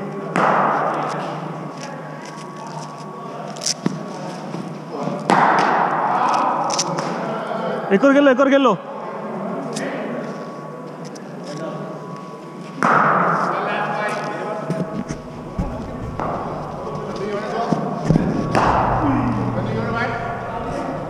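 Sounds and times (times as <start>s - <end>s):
background voices: 14.8s - 21.0s
cricket balls thudding: 14.9s - 17.4s.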